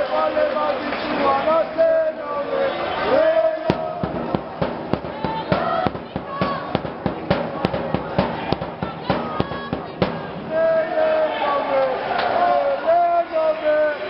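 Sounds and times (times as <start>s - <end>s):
crowd chanting and shouting: 0.0s - 14.0s
loud sharp beats: 3.2s - 12.2s.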